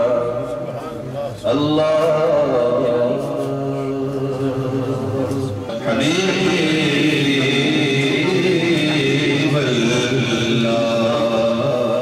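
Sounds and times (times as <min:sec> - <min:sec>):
men chanting a long note: 0:00.0 - 0:12.0.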